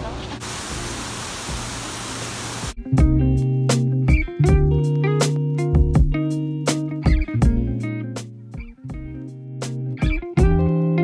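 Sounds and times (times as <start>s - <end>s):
waterfall rushing: 0.0s - 2.8s.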